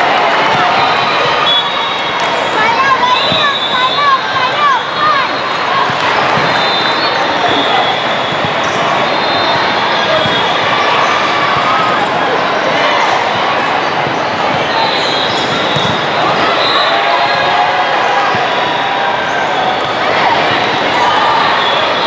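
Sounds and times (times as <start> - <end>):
volleyballs hit and bouncing: 0.0 - 4.6, 5.8 - 17.5
babble of voices: 0.0 - 22.0.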